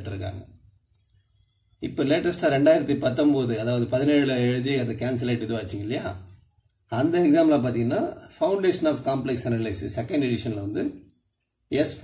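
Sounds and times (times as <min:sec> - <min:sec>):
man speaking: 0:00.0 - 0:00.6, 0:01.8 - 0:11.1, 0:11.7 - 0:12.0.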